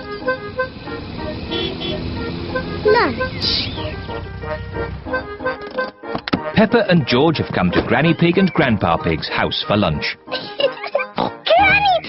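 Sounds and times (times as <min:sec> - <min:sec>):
cartoon car engine running: 0:00.0 - 0:05.6.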